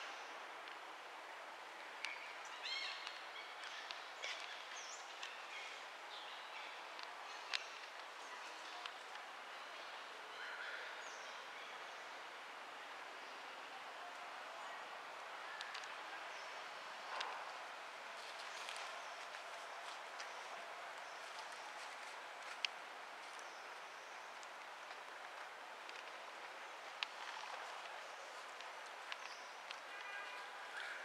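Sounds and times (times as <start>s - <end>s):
steady forest hiss: 0.0s - 31.0s.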